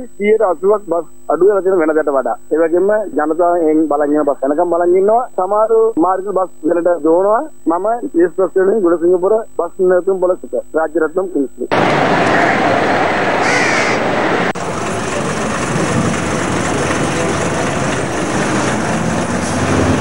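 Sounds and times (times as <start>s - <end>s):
people talking: 0.0s - 18.0s
bus engines running: 11.7s - 20.0s
crow cawing: 13.4s - 14.1s.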